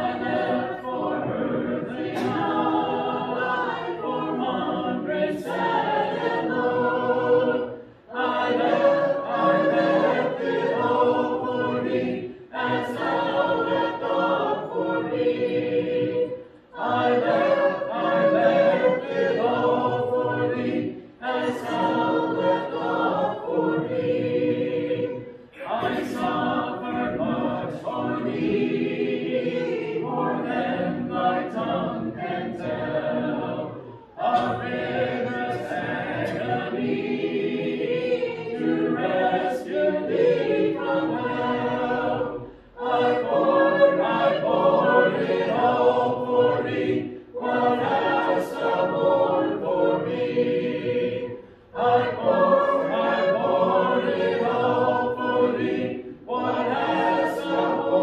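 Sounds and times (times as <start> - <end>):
congregation singing a hymn: 0.0 - 58.0.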